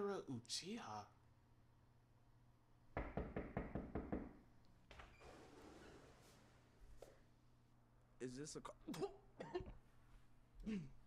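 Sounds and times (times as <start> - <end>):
rapid knocking on door: 3.0 - 4.4.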